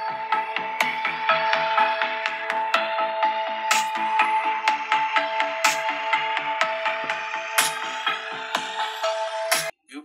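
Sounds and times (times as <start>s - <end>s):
electronic music from phone speakers: 0.0s - 9.8s.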